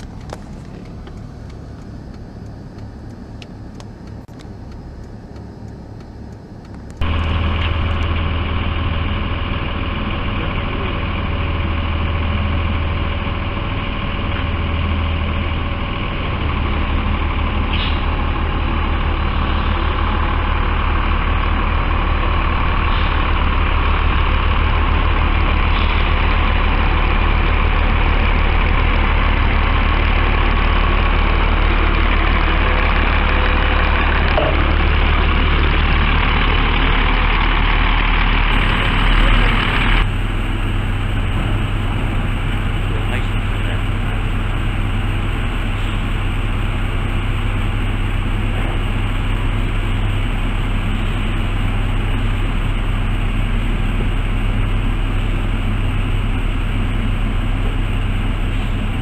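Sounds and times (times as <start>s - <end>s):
motorhome engine rumbling: 0.0s - 59.0s.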